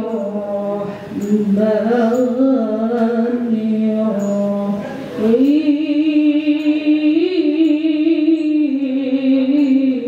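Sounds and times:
woman chanting through a microphone: 0.0s - 10.0s.

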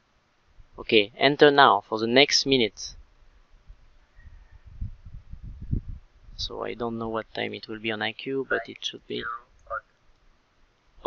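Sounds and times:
faint low thumps and rumble: 2.8s - 9.8s.

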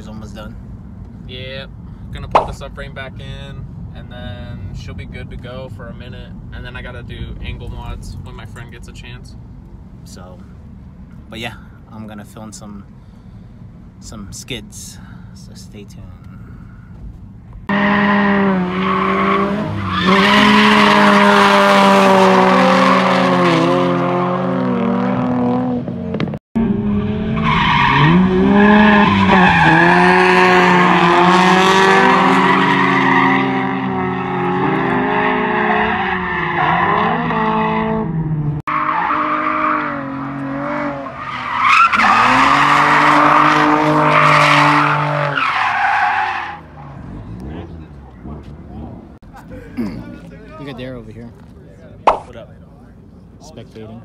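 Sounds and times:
car engine revving: 17.6s - 49.2s.

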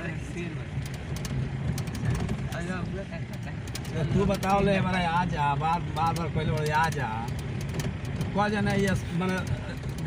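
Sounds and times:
car engine and road drone: 0.0s - 10.0s
rattles and knocks: 0.7s - 10.0s.

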